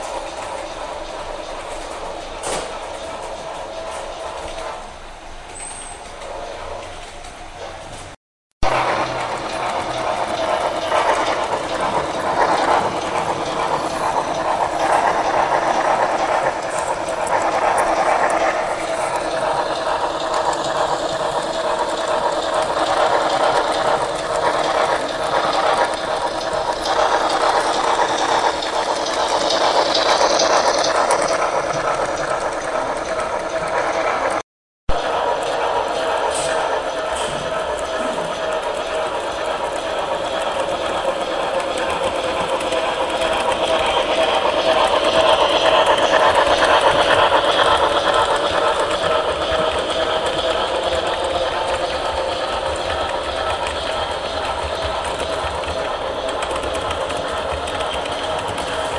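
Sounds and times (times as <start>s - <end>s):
wheels clicking on track: 0.0s - 58.9s
model train motor whirring: 8.8s - 33.8s, 35.4s - 58.9s.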